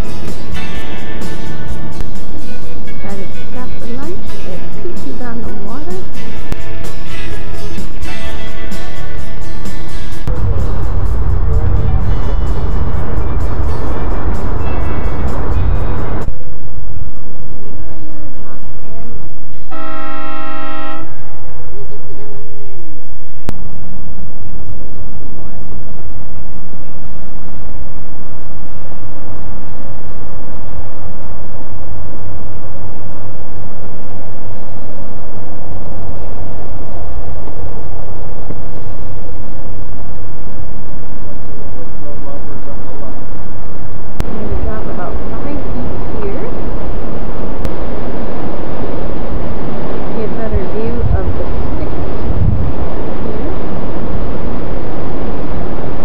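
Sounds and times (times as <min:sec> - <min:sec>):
background music: 0:00.0 - 0:16.3
boat horn blast: 0:19.7 - 0:21.4.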